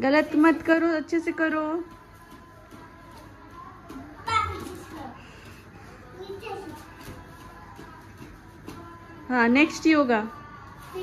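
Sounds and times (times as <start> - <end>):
soft child's voice: 6.0 - 7.1.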